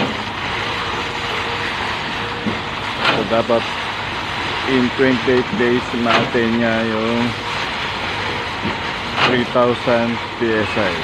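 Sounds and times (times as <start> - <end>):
machinery engine noise: 0.0 - 11.0.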